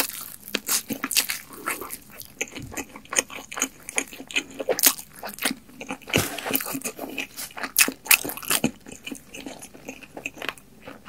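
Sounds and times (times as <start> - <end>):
person chewing crunchy food: 0.0 - 11.0.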